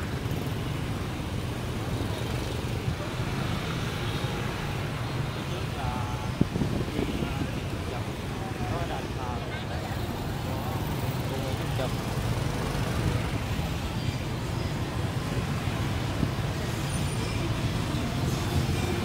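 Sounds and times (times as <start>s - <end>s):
motorbike traffic rumble: 0.0s - 19.0s
crowd voices: 2.6s - 19.0s.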